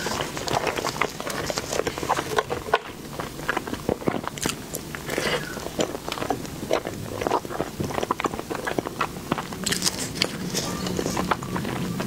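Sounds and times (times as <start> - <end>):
wet chewing and mouth clicks: 0.0 - 12.0.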